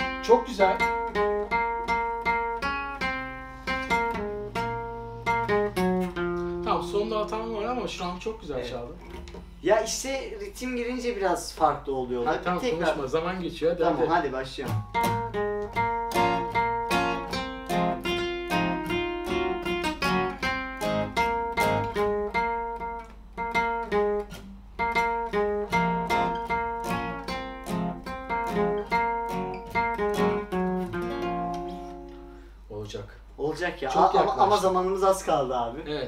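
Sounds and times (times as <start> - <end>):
acoustic guitar picking melody: 0.0 - 9.6, 12.2 - 32.7
acoustic guitar strumming chords: 0.0 - 9.6, 13.8 - 32.7.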